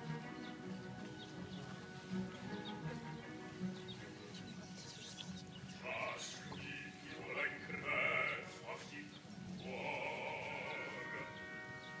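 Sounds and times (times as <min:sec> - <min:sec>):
instrumental accompaniment: 0:00.0 - 0:12.0
operatic singing: 0:05.8 - 0:12.0.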